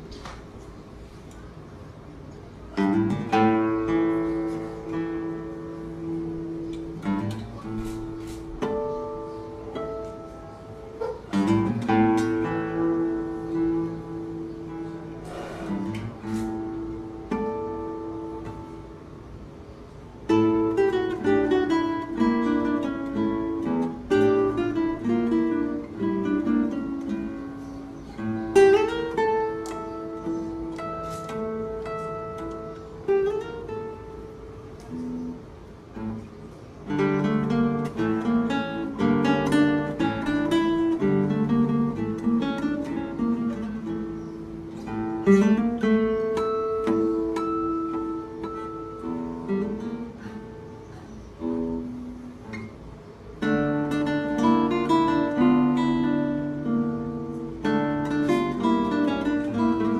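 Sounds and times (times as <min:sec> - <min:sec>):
classical guitar fingerstyle piece: 0:00.0 - 0:59.9.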